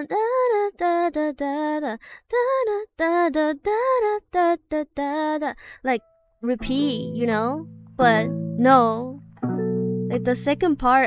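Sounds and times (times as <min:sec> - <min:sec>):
woman singing wordless melody: 0:00.0 - 0:09.3, 0:10.1 - 0:11.0.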